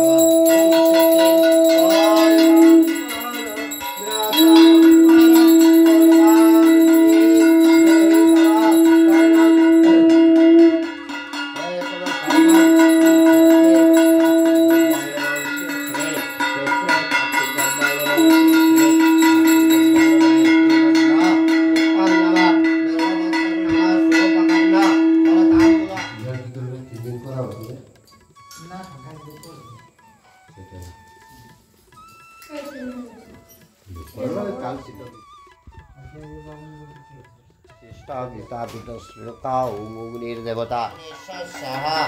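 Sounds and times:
hand bell ringing fast: 0.0s - 26.2s
conch shell blasts: 0.0s - 27.0s.

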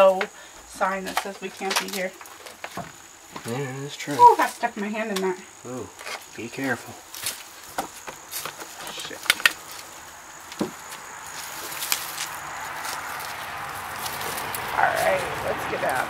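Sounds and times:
footsteps through dry grass: 6.6s - 16.0s.

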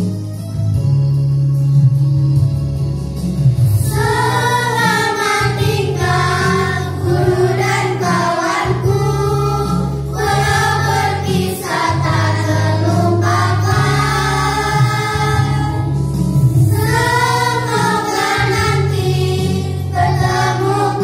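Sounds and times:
karaoke backing track with bass: 0.0s - 21.0s
girls singing in unison: 3.9s - 15.9s, 16.7s - 21.0s.

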